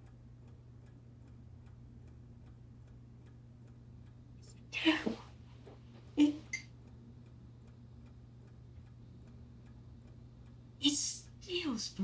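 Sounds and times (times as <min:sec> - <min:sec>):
clock ticking: 0:00.0 - 0:04.2, 0:06.2 - 0:12.0
low even hum: 0:00.0 - 0:12.0.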